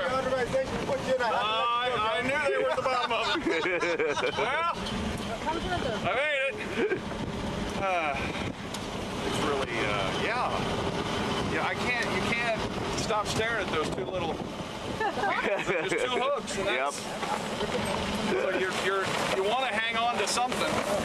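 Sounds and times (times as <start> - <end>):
boat motor: 0.0 - 21.0
men talking and calling out: 0.0 - 21.0
wind on microphone: 7.0 - 15.6.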